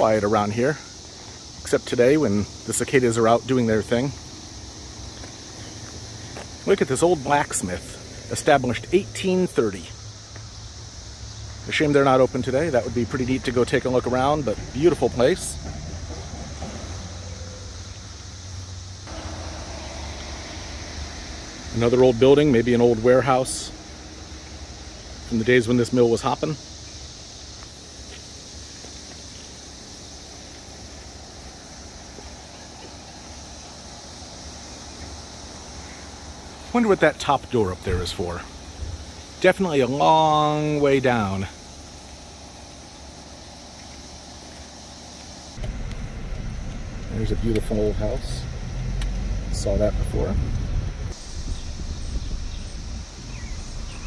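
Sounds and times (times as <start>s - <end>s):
cicadas droning: 0.0s - 54.0s
low rumble: 45.6s - 54.0s.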